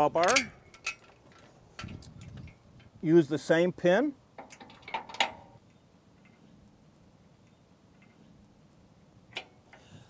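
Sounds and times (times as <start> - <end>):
metal pin clinking on bracket: 0.0 - 2.9, 4.4 - 5.6.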